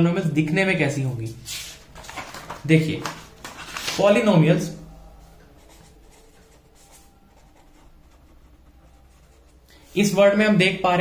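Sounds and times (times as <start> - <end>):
pen scratching on paper: 5.4 - 9.6.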